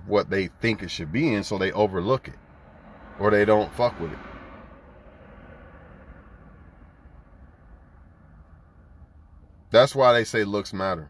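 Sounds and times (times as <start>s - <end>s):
low hum inside a car: 0.0s - 11.0s
man speaking: 9.7s - 11.0s.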